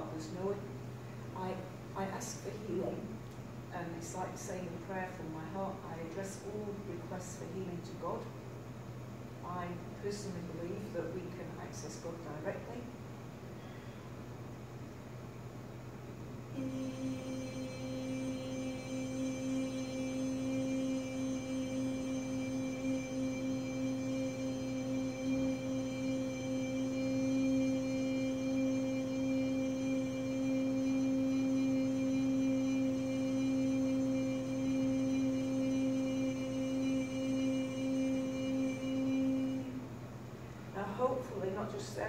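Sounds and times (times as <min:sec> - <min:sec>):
steady low hum: 0:00.0 - 0:42.0
woman toning a long note: 0:16.5 - 0:40.1.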